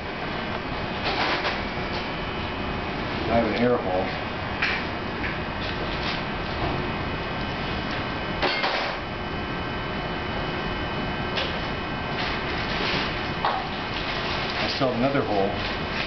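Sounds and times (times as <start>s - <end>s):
steady room hum: 0.0s - 16.0s.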